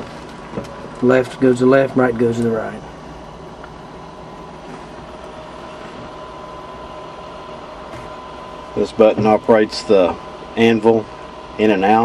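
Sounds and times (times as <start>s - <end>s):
engine humming at idle: 0.0s - 12.0s
faint steady whine: 0.0s - 12.0s.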